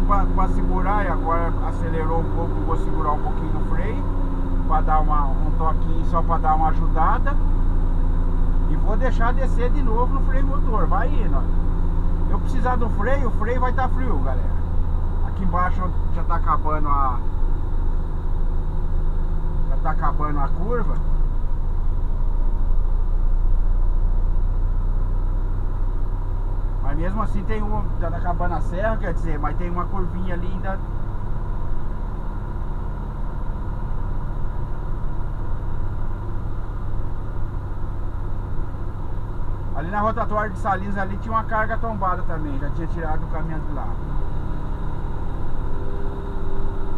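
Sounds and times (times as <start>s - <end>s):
diesel truck engine droning: 0.0s - 46.9s.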